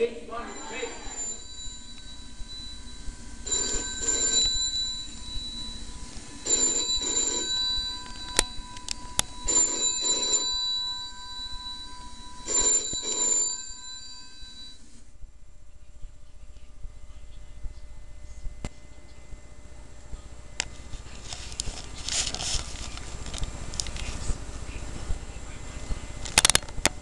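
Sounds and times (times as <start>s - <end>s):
telephone double ring: 0.5s - 5.8s, 6.4s - 14.8s.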